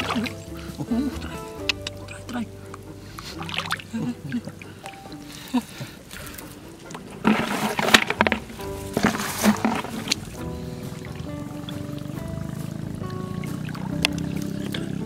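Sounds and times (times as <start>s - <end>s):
hands splashing in muddy water: 0.0s - 1.8s, 6.1s - 12.2s
background music with held notes: 0.0s - 15.0s.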